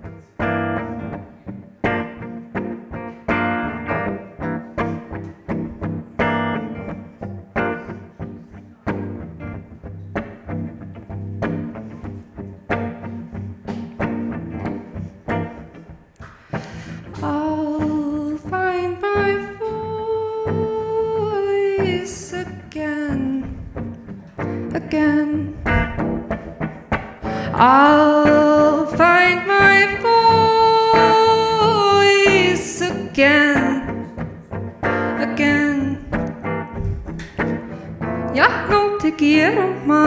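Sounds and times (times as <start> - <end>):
electric guitar accompaniment: 0.0 - 40.0
person singing long notes: 17.0 - 23.9, 27.3 - 34.2.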